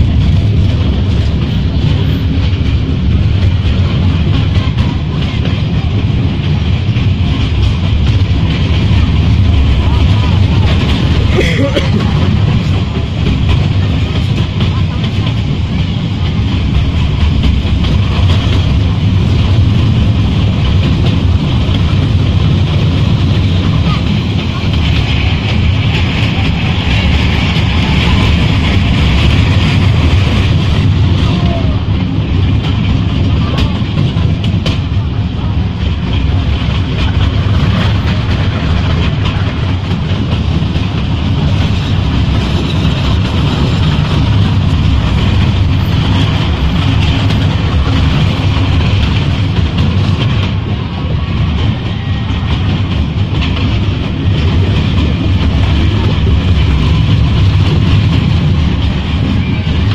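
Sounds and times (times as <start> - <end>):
train rumbling along track: 0.0 - 59.9.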